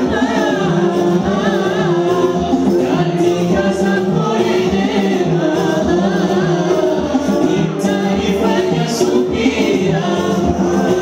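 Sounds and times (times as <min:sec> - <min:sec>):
men singing through sound system: 0:00.0 - 0:11.0.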